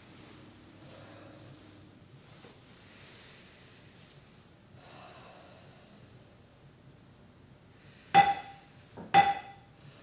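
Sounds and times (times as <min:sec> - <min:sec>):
faint breath through the nose: 0:04.8 - 0:06.2.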